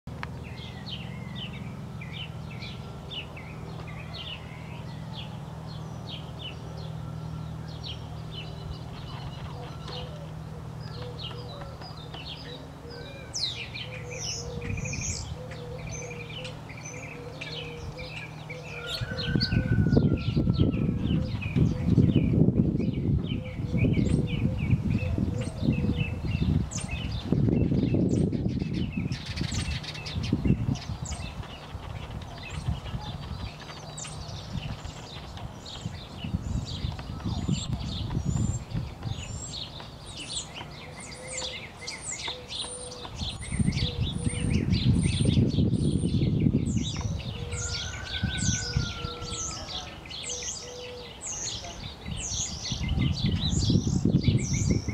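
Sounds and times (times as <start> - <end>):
low rumbling noise: 0.1 - 41.8
small birds chirping: 0.1 - 54.9.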